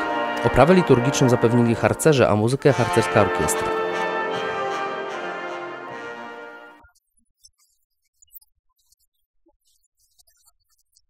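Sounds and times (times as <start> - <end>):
brass band sustained chord: 0.0 - 6.8.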